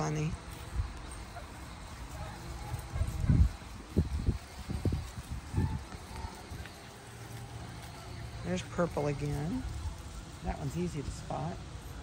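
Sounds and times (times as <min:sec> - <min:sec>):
wind buffeting microphone: 0:00.0 - 0:07.6.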